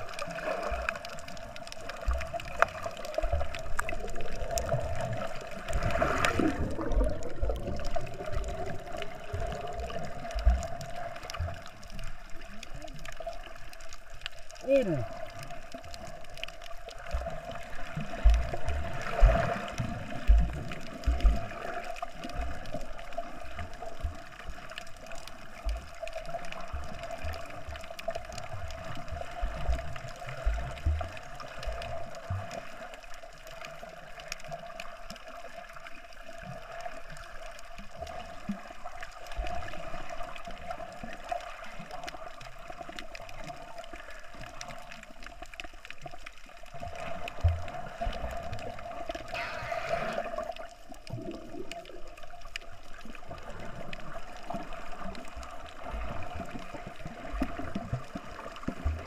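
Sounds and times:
low thumps and gurgles: 0.0s - 11.8s, 17.0s - 22.8s, 26.6s - 32.5s, 47.2s - 51.8s, 56.0s - 59.0s
muffled underwater movement: 0.0s - 59.0s.

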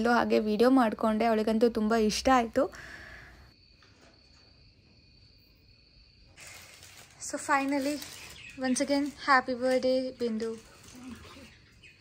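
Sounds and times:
high-pitched cricket trilling: 0.7s - 9.5s.

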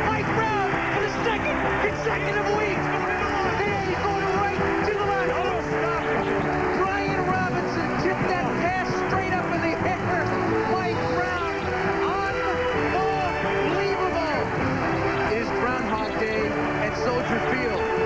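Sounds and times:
music with long held notes: 0.0s - 18.0s
stadium crowd cheering: 0.0s - 18.0s.

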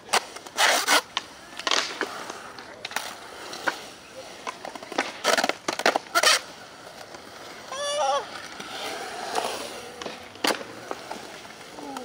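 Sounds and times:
skateboard clack: 0.0s - 12.0s
skateboard wheels rolling on concrete: 0.0s - 12.0s.

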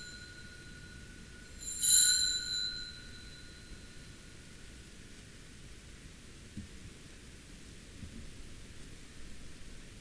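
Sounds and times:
altar bell ringing: 0.0s - 4.6s.

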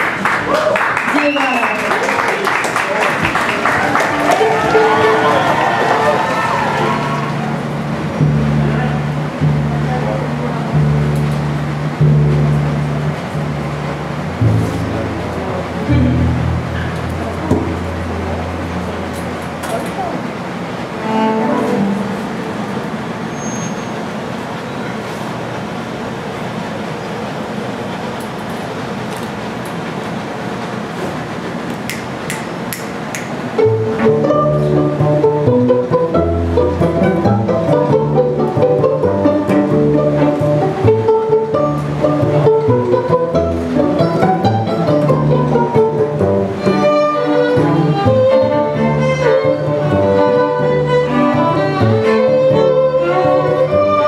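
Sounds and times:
bowed strings: 4.0s - 20.1s, 20.7s - 23.4s, 33.6s - 54.0s
plucked double bass: 7.1s - 20.1s, 20.8s - 23.1s, 33.6s - 54.0s.

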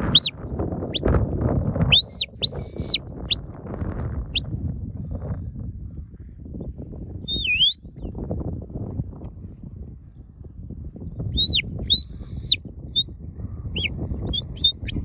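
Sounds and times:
shepherd's whistle: 0.0s - 0.4s, 1.9s - 3.4s, 7.3s - 7.8s, 11.3s - 13.1s, 13.8s - 15.0s
wind rumble on microphone: 0.0s - 15.0s.

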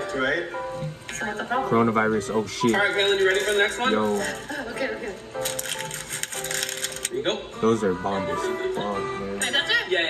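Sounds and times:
background music: 0.0s - 10.0s
plastic candy wrapper crinkling: 5.4s - 7.1s.

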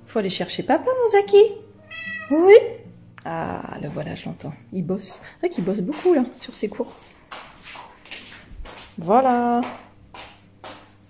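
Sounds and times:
footsteps shuffling on tiles: 5.0s - 11.0s.

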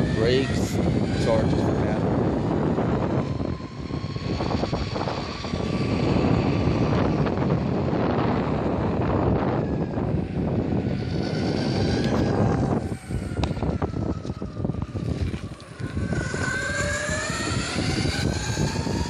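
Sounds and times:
electric motor whine: 0.0s - 19.0s
tyres rumbling on asphalt: 0.0s - 19.0s
wind on microphone: 0.0s - 19.0s.

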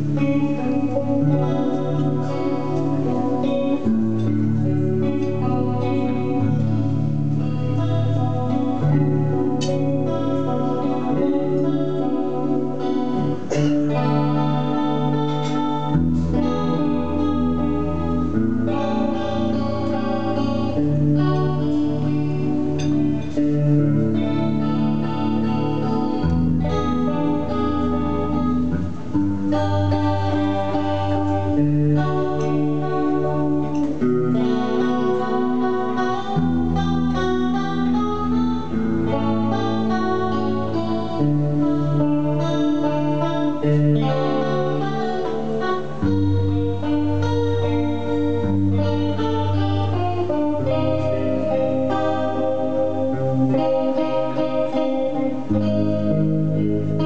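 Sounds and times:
solo guitar playing: 0.0s - 57.0s.

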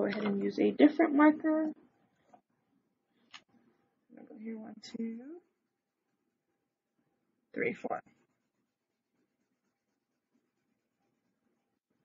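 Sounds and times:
woman speaking: 0.0s - 1.8s
felt-tip marker scribbling on paper: 8.0s - 11.9s.

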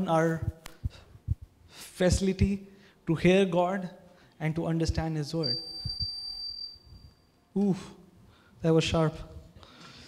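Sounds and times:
microphone feedback whine: 5.4s - 7.4s.

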